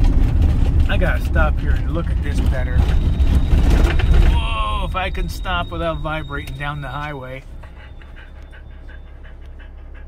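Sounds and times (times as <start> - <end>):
road noise: 0.0 - 10.0
van engine rumble: 0.0 - 10.0
dog panting: 5.1 - 10.0.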